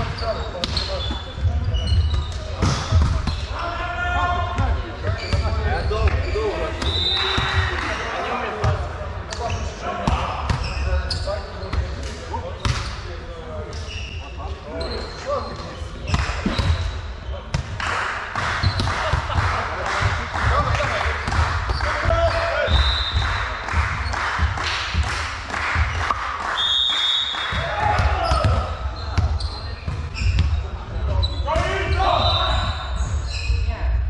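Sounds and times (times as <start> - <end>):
players talking: 0.0 - 26.2, 27.4 - 34.0
hands slapping volleyballs: 17.5 - 28.6
balls bouncing on wooden floor: 18.6 - 26.2.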